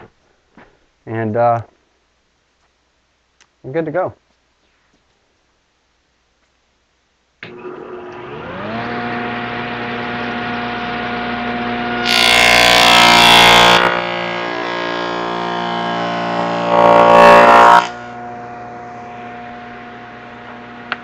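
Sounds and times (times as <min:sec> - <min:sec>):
table saw motor running: 0:07.5 - 0:21.0
saw blade cutting wood: 0:12.0 - 0:18.2.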